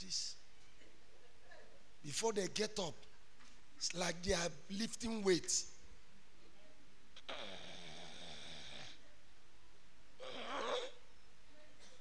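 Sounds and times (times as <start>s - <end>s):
man's strained wheezy groan: 7.2s - 9.0s, 10.2s - 11.0s.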